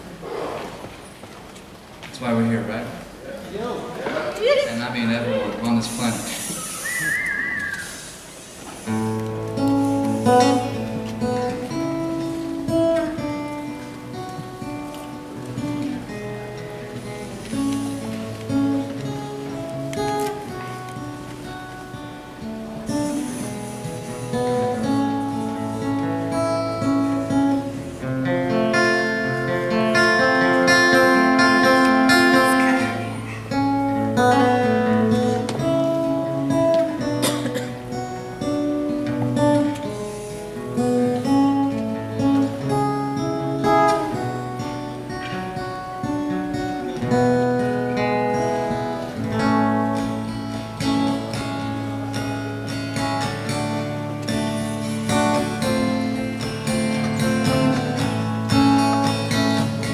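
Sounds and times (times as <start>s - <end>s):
acoustic guitar strummed and picked: 6.4s - 59.9s.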